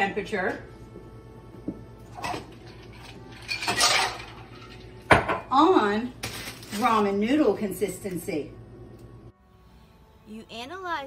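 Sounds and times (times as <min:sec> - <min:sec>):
pots and dishes clinking: 0:02.1 - 0:05.6.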